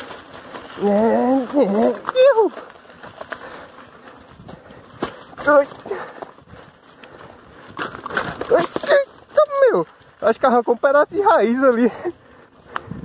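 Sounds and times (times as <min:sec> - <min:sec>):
bicycle rattling over dirt: 0:00.0 - 0:13.0
rider exclaiming: 0:00.8 - 0:02.7
bike frame knocking ground: 0:07.6 - 0:09.6.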